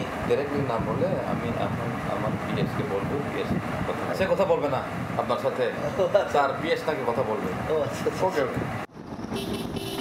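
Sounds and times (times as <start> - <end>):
road vehicle driving: 0.0 - 10.0.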